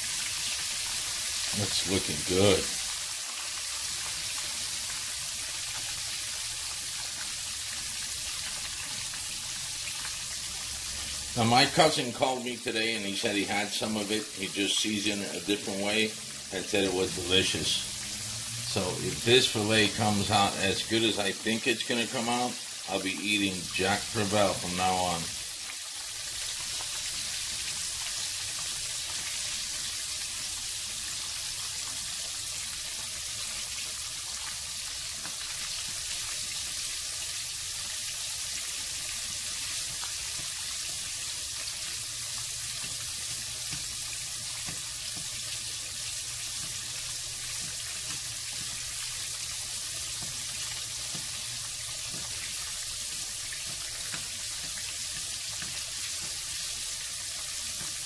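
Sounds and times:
fish sizzling in frying oil: 0.0 - 58.0.

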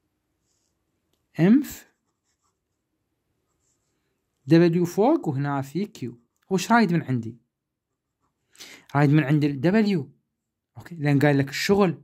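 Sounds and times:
pen scratching on paper: 1.9 - 4.1.

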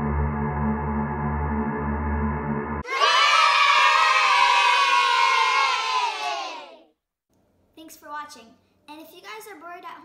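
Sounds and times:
low drone music: 0.0 - 2.8
crowd cheering and shouting: 2.8 - 6.8.

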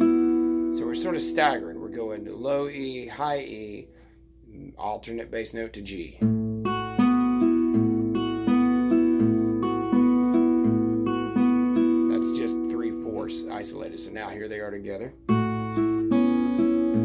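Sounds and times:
fingerpicked acoustic guitar: 0.0 - 4.1, 6.1 - 17.0.

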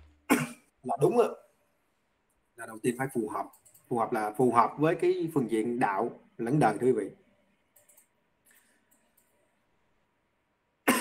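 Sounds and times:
man coughing: 0.3 - 0.7.

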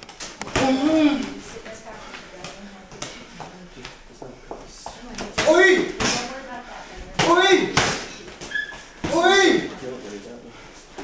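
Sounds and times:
person shouting: 5.4 - 6.0, 7.2 - 7.8, 9.0 - 9.7.

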